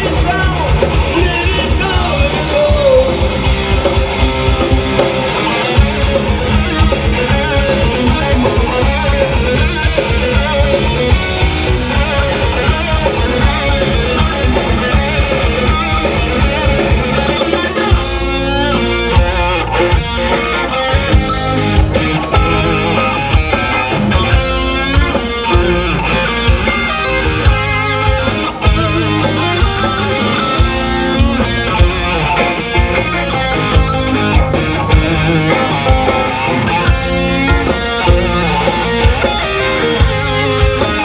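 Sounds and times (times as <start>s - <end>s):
bass guitar: 0.0s - 41.0s
drums: 0.0s - 41.0s
electric guitars: 0.0s - 41.0s.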